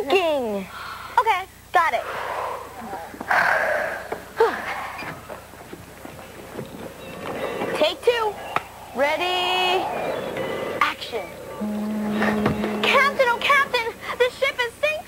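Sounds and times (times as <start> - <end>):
held steady note: 5.9 - 15.0
children's voices: 7.2 - 15.0.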